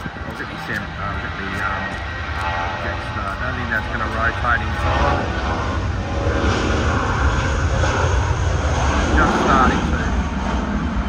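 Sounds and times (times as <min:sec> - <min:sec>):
jet engines roaring at takeoff: 0:00.0 - 0:11.0.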